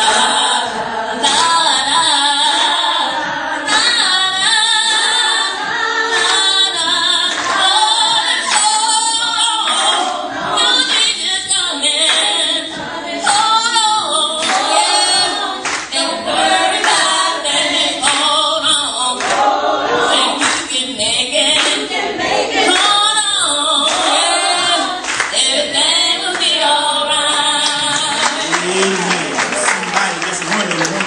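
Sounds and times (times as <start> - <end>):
gospel group singing: 0.0 - 31.0
hand clapping: 6.1 - 6.6, 7.3 - 8.9, 14.4 - 16.1, 16.8 - 17.2, 18.0 - 18.3, 19.2 - 19.5, 20.3 - 20.7, 21.6 - 21.8, 23.8 - 25.4, 27.3 - 31.0.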